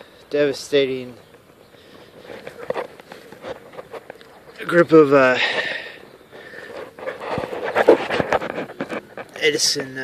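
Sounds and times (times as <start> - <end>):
light rustles: 0.0 - 10.0
footsteps on dry ground: 0.8 - 10.0.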